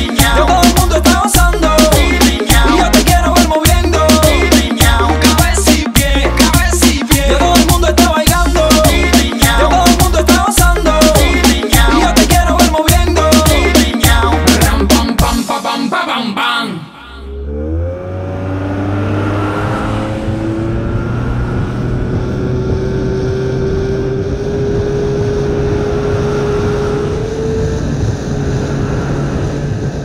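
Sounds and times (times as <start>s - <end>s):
song: 0.0s - 17.5s
indistinct voices: 0.0s - 17.6s.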